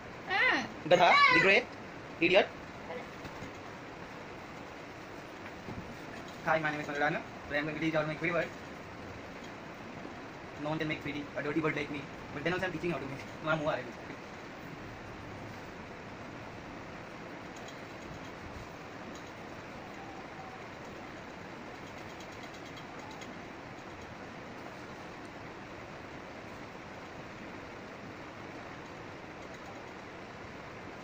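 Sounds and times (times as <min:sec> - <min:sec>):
steady background noise: 0:00.0 - 0:31.0.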